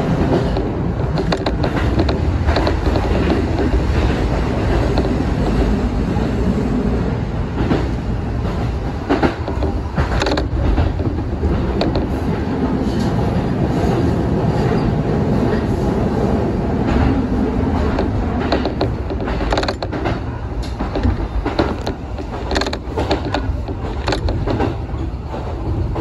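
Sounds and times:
wheels clicking over rail joints: 0.0 - 6.3, 7.6 - 13.9, 16.8 - 26.0
train wheels rumbling on rail: 0.0 - 26.0.

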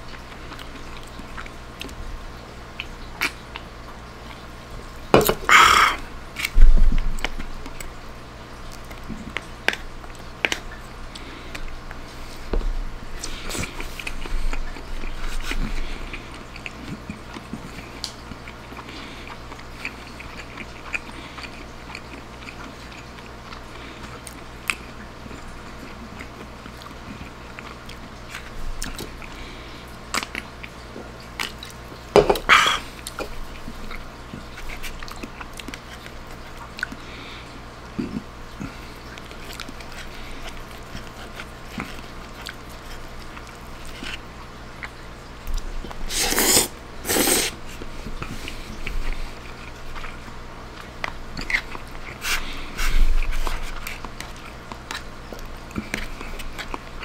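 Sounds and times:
chewing spaghetti: 0.0 - 2.1, 2.7 - 4.8, 5.5 - 57.0.

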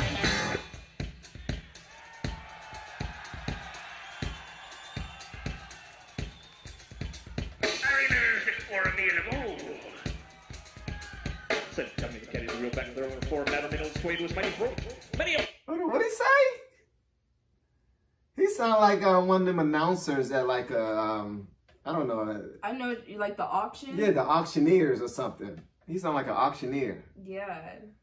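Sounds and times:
drum kit beat: 0.0 - 16.1
man talking fast: 7.8 - 10.0, 11.8 - 15.0, 15.7 - 16.6, 18.4 - 22.6, 23.9 - 27.0.

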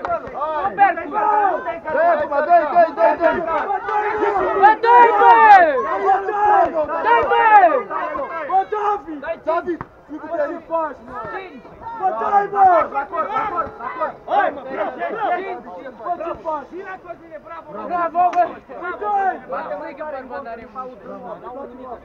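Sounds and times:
men shouting: 0.4 - 19.8.

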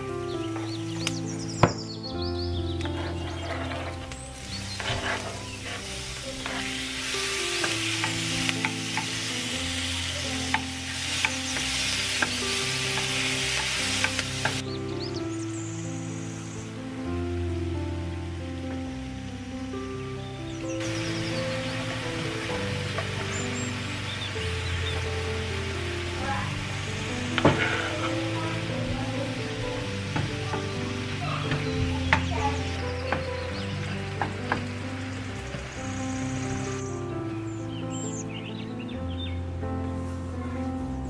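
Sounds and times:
background music with held notes: 0.0 - 41.0
meat sizzling in frying pan: 2.9 - 37.0.

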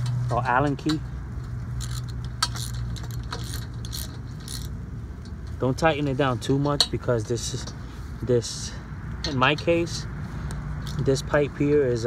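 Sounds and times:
ratchet metallic clicks and clinks: 0.0 - 5.6.

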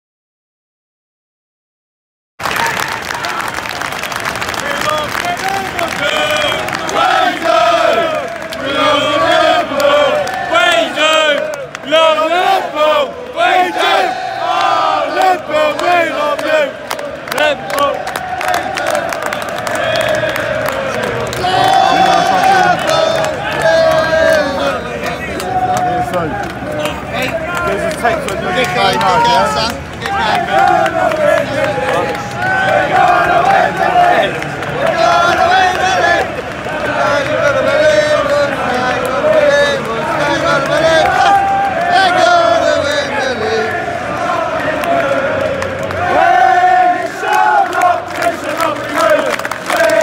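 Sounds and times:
crowd singing and chanting: 5.5 - 50.0.

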